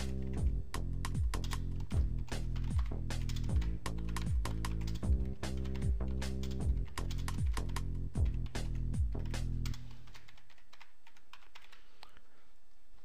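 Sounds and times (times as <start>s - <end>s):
electronic music with kick drum: 0.0s - 9.9s
computer keyboard typing: 0.0s - 11.9s.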